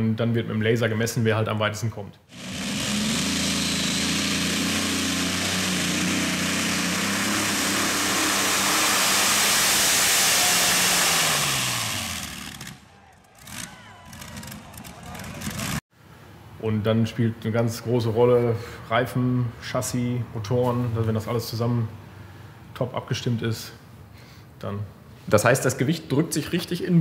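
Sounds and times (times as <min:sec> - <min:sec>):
tractor engine running flat out: 0:02.3 - 0:15.8.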